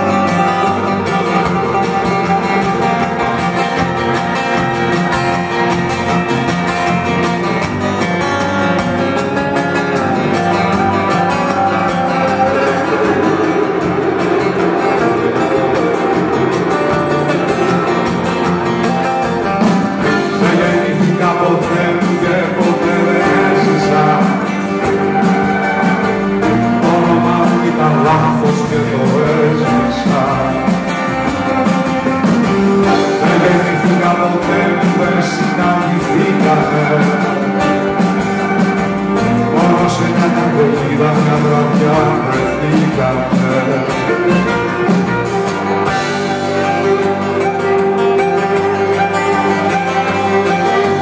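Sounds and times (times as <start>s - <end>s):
strummed acoustic guitar: 0.0s - 51.0s.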